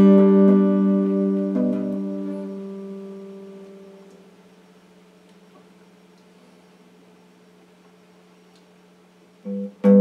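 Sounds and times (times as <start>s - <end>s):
electric guitar chord ringing: 0.0s - 4.4s, 9.4s - 10.0s.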